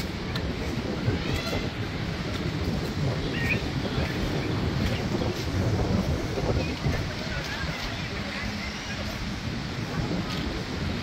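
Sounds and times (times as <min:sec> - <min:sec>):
wind blowing on microphone: 0:00.0 - 0:11.0
faint voices of people: 0:00.1 - 0:11.0.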